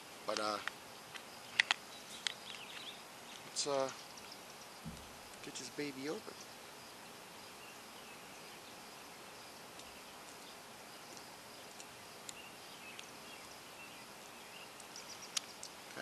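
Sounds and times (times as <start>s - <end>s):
faint outdoor background noise: 0.0s - 16.0s
faint bird chirps: 1.4s - 16.0s.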